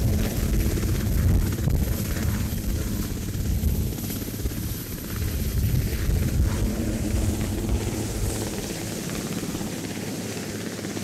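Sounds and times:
helicopter rotor chop and turbine: 0.0s - 11.0s.

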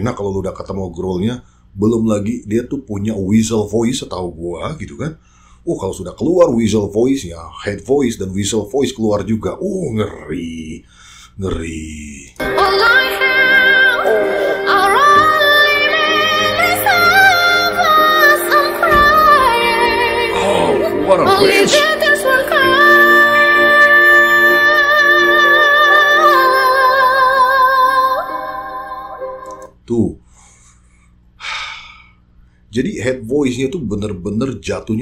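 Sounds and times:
man gasping: 5.2s - 5.6s, 10.8s - 11.4s, 30.2s - 32.7s
woman singing pop ballad: 12.4s - 29.2s
sustained musical accompaniment: 12.4s - 29.7s.

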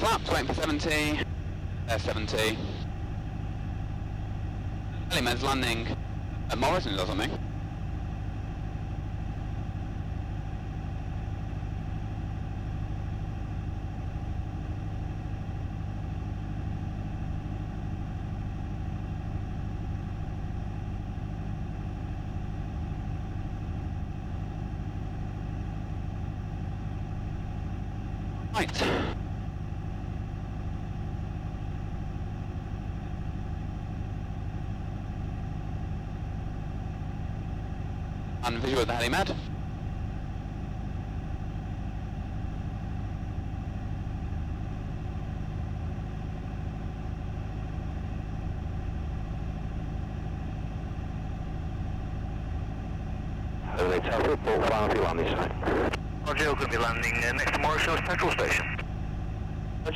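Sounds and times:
aircraft engine drone in cabin: 0.0s - 59.9s.

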